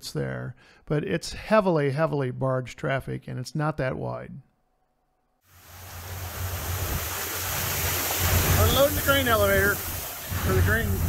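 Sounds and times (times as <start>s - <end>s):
boat engines humming: 5.6s - 11.0s
wind buffeting microphone: 5.7s - 11.0s.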